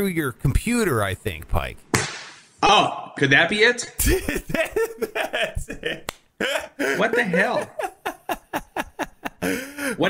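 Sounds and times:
man laughing: 4.0s - 10.0s.

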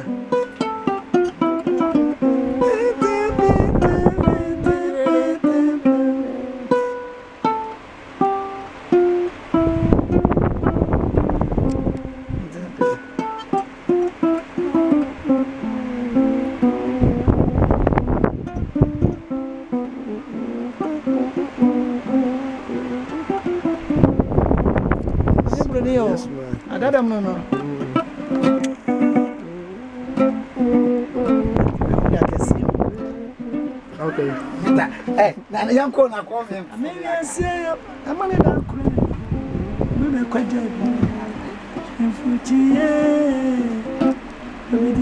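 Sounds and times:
plucked harp-lute notes: 0.0s - 45.0s.

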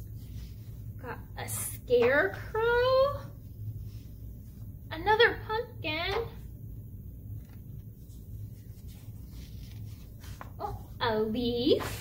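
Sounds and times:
low steady hum: 0.0s - 12.0s
paper cards rustling: 7.3s - 11.0s.

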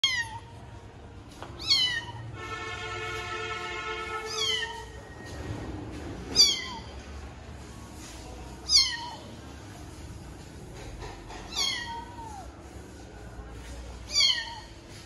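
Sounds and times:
kitten meowing: 0.0s - 0.4s, 1.6s - 2.2s, 4.3s - 4.8s, 6.4s - 6.9s, 8.7s - 9.2s, 11.5s - 12.5s, 14.1s - 14.7s.

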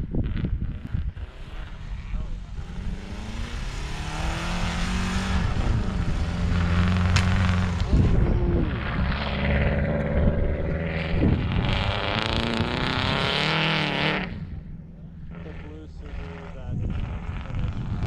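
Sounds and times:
rally car engine revving hard: 0.2s - 14.6s, 15.2s - 18.0s.

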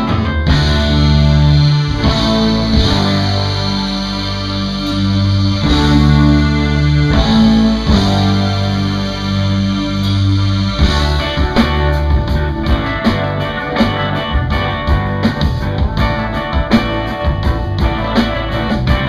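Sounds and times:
rock band playing live: 0.0s - 19.0s.

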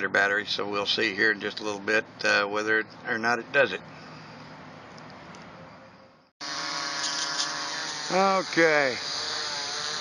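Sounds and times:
quadcopter motors buzzing: 6.4s - 10.0s.

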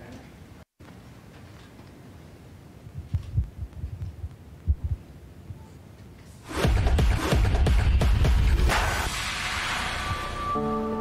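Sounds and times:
microphone being handled and knocked: 3.0s - 5.0s.

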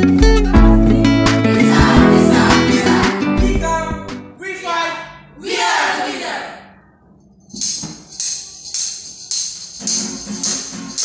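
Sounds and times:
group singing: 0.7s - 3.7s, 5.4s - 6.8s
tambourine jingling: 7.3s - 11.0s.

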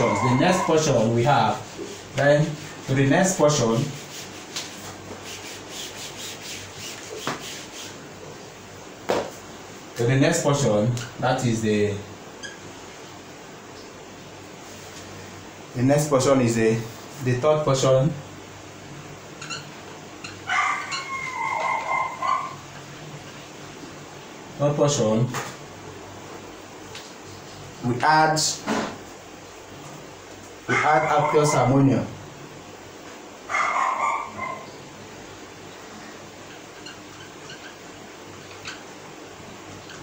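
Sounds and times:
marker squeaking on whiteboard: 0.0s - 2.3s, 12.4s - 12.7s, 19.4s - 22.4s, 36.4s - 37.8s, 38.4s - 38.9s
whiteboard duster rubbing: 0.0s - 8.1s.

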